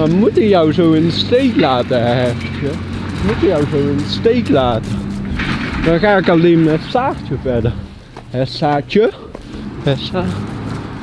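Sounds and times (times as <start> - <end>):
man speaking: 0.0 - 5.1, 5.8 - 10.5.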